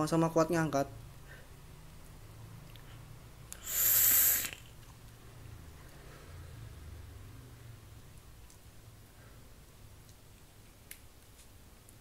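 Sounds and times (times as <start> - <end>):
breathy vapour exhale: 3.6 - 4.7.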